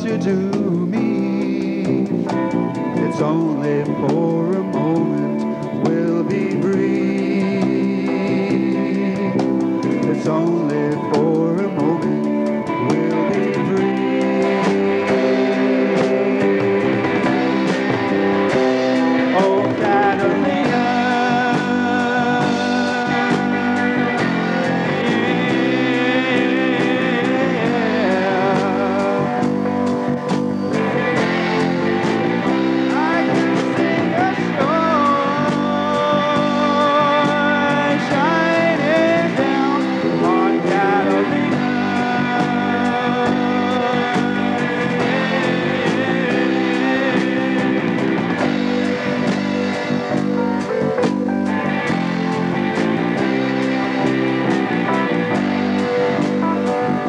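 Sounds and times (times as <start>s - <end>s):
soft rock band playing: 0.0s - 57.0s
wavering lead melody: 0.0s - 57.0s.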